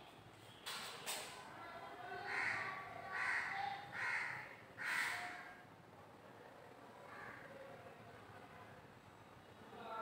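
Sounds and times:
crow cawing: 2.2 - 5.6, 7.1 - 7.5.

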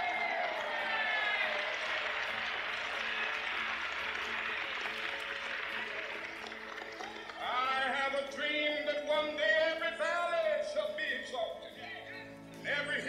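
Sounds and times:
crowd applauding and cheering: 0.0 - 9.0
soft background music: 0.0 - 13.0.

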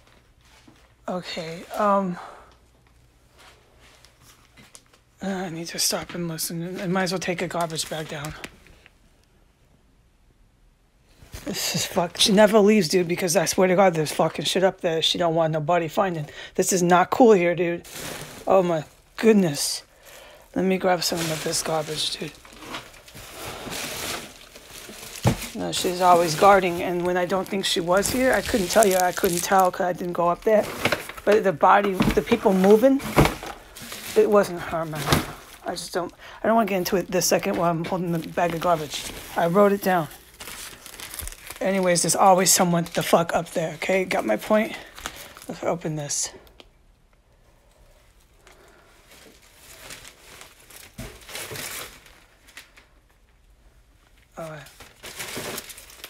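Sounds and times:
plastic bag crinkling: 5.6 - 8.9, 16.7 - 46.6, 48.2 - 56.0
close rustling: 20.7 - 41.7.

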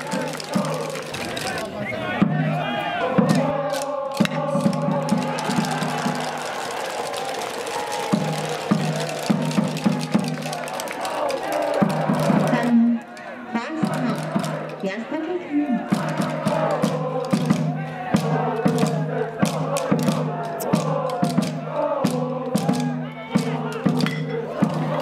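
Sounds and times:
rhythmic music: 0.0 - 1.7, 2.3 - 25.0
crowd chanting and shouting: 0.0 - 25.0.

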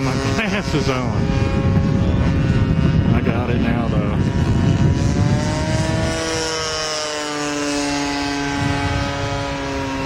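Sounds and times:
model airplane engine running: 0.0 - 10.0.

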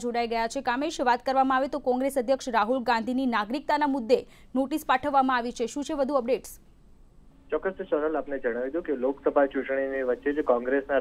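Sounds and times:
news reader narrating: 0.0 - 6.6.

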